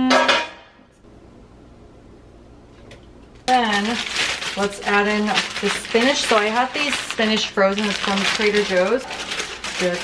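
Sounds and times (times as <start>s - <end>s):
person speaking: 3.5s - 10.0s.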